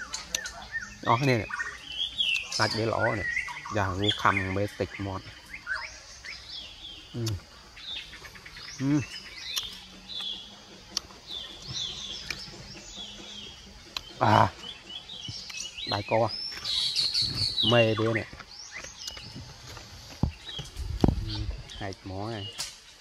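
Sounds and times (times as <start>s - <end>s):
small birds chirping: 0.0s - 23.0s
man murmuring: 8.8s - 9.1s.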